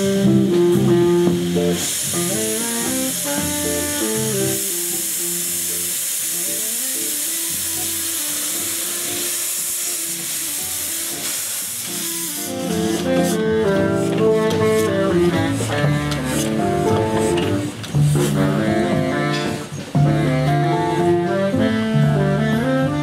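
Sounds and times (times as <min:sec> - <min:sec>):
steam locomotive hissing: 0:00.0 - 0:22.9
jazz band playing: 0:00.0 - 0:23.0.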